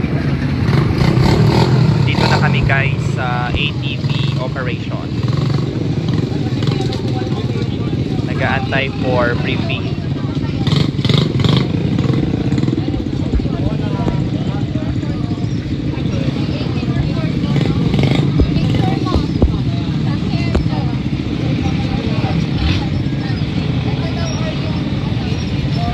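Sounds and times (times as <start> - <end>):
people talking: 2.1 - 5.1, 6.3 - 10.9, 12.5 - 25.9.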